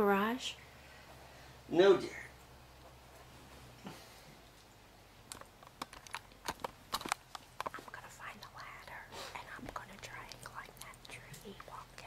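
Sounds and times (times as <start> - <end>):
sharp keyboard clicks: 5.3 - 7.9
soft whispering: 7.7 - 12.0.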